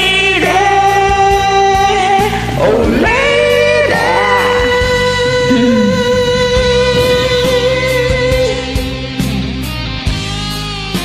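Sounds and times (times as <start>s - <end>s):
karaoke duet singing: 0.0s - 9.1s
backing track: 2.8s - 9.2s.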